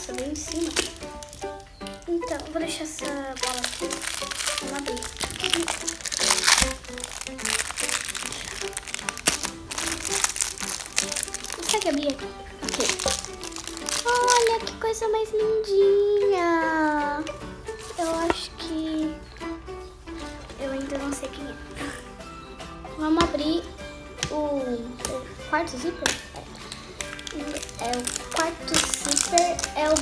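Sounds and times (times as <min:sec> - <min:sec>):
plastic wrapper crinkling: 0:00.0 - 0:14.7, 0:17.7 - 0:18.7, 0:20.2 - 0:22.0, 0:26.4 - 0:30.0.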